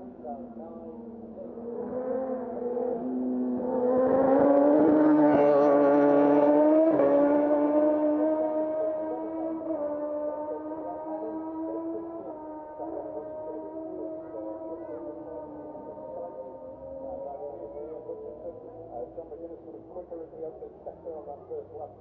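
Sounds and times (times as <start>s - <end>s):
racing motorcycle passing: 0.0s - 20.0s.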